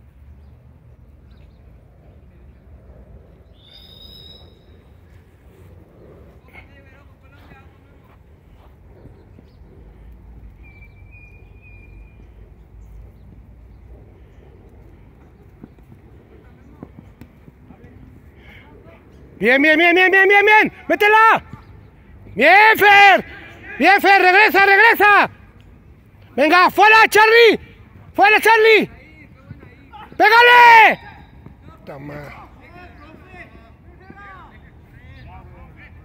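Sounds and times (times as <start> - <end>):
distant players' voices: 0.0 - 36.0
high whistle: 3.6 - 4.8
wind rumble on microphone: 4.5 - 18.3.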